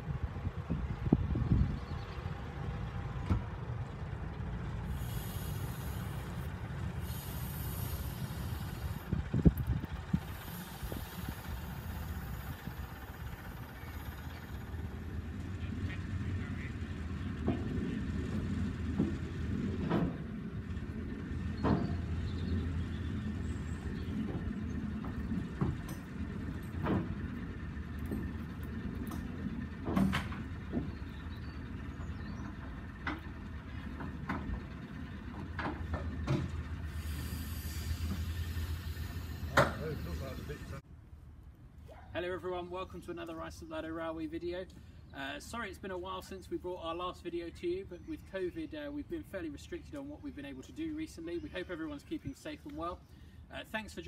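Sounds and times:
diesel train engine rumble: 0.0 - 54.0
wheel clicks over rail joints: 2.5 - 16.2, 17.0 - 40.8
faint hiss: 4.9 - 9.1, 36.9 - 40.8.

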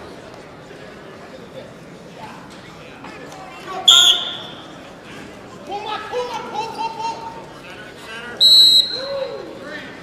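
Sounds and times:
crowd chatter: 0.0 - 10.0
referee whistle blast: 3.9 - 4.6, 8.4 - 9.1.

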